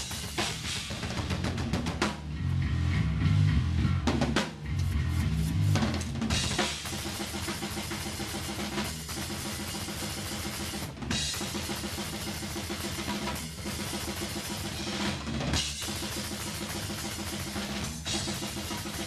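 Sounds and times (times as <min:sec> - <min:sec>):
drum kit played fast: 0:00.0 - 0:19.0.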